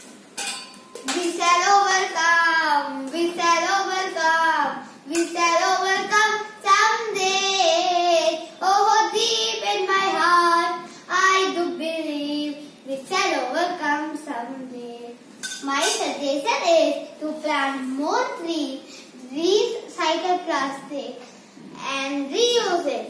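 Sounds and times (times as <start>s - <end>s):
child singing: 1.0s - 16.0s.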